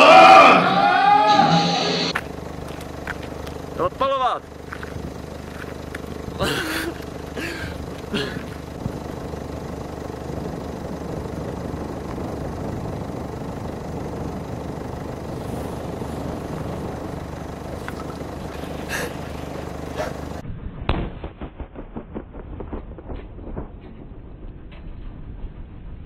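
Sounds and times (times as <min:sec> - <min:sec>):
steady low hum: 0:01.7 - 0:26.0
loud explosion bang: 0:20.4 - 0:26.0
crackling pops: 0:20.8 - 0:25.2.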